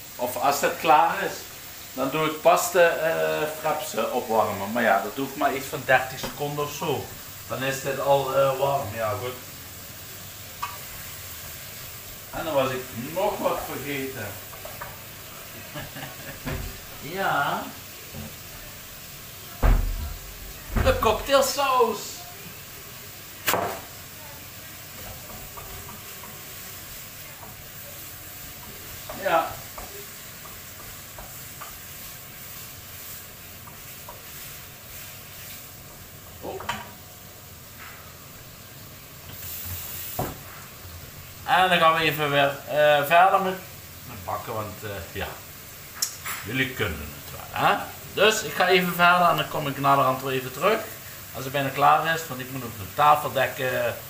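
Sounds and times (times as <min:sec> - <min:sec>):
chicken sizzling in a pan: 0:00.0 - 0:54.0
thump: 0:16.4 - 0:16.8, 0:19.6 - 0:21.0, 0:40.2 - 0:40.4
loud knock: 0:19.6 - 0:21.0.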